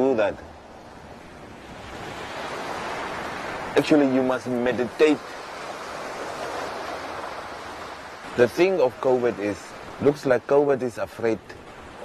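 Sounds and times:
ocean waves washing onto beach: 0.0 - 12.0.

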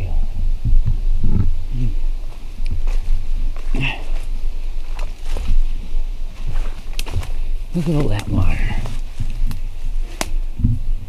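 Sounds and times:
low microphone rumble: 0.0 - 11.0
footsteps through undergrowth: 2.2 - 10.5
twigs snapping and crackling: 2.6 - 5.7, 6.4 - 10.4.

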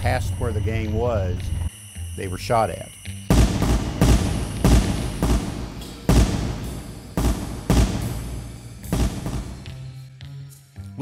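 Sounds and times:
gunshots with ringing tail: 3.3 - 9.9.

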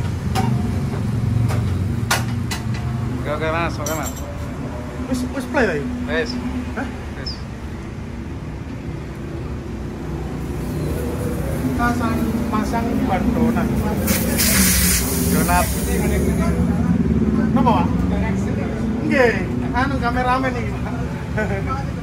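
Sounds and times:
background voices talking: 11.2 - 22.0
loud burst of hiss: 14.0 - 16.5.

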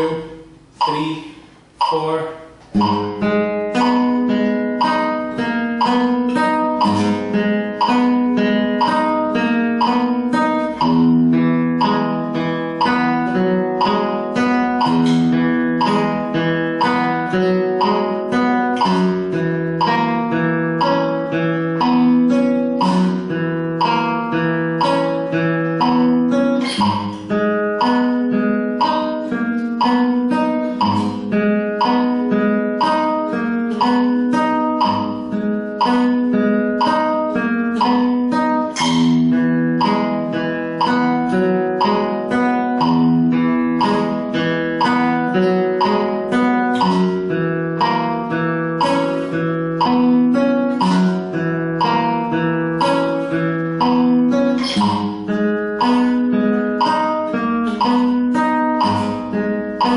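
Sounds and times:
flamenco guitar arpeggio: 0.0 - 59.9.

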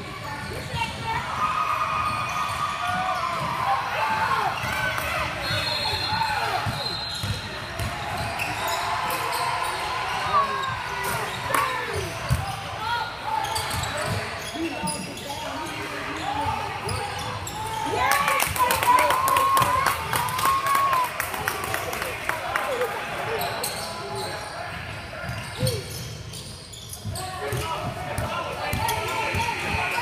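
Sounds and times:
voices of players and spectators: 0.0 - 30.0
sneaker squeaks: 2.0 - 3.6, 4.4 - 18.0, 23.3 - 30.0
people clapping: 17.9 - 23.2.

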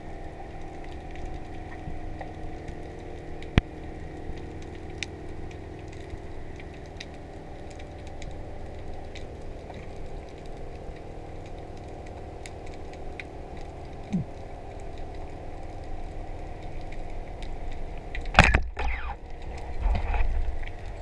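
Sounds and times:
low underwater drone: 0.0 - 21.0.

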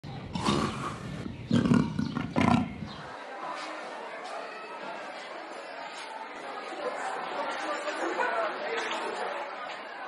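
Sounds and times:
leopard roaring: 0.3 - 2.8.

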